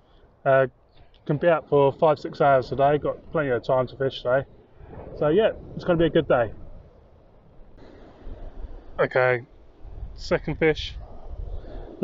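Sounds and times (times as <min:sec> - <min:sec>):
wind rumbling on microphone: 0:00.0 - 0:12.0
hissy rush of noise: 0:01.6 - 0:12.0.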